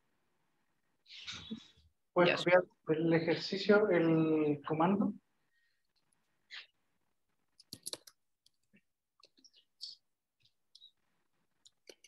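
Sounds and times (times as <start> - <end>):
keyboard keys typing: 7.6 - 10.0, 11.6 - 12.0.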